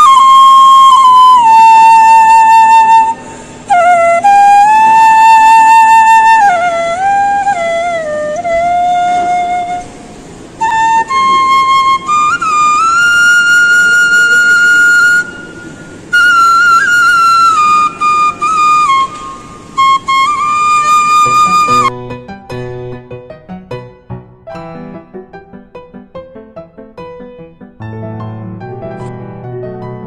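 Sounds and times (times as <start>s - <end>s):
bamboo flute melody: 0.0s - 23.9s
piano-like music: 0.0s - 30.0s.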